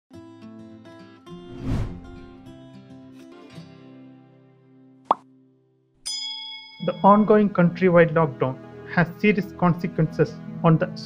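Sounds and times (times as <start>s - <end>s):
background music: 6.8s - 11.0s.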